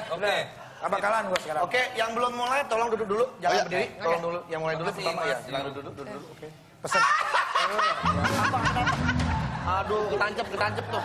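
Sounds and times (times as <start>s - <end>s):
people laughing: 6.9s - 11.0s.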